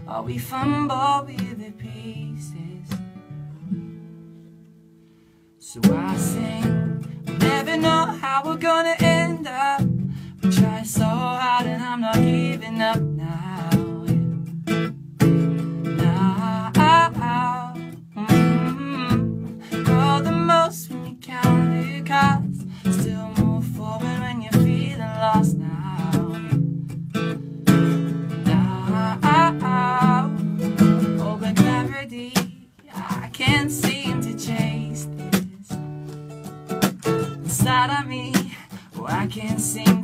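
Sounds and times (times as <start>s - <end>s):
man singing: 0.0s - 3.0s, 5.6s - 14.3s, 15.8s - 26.6s, 28.3s - 35.8s, 37.4s - 40.0s
acoustic guitar strumming: 0.0s - 40.0s.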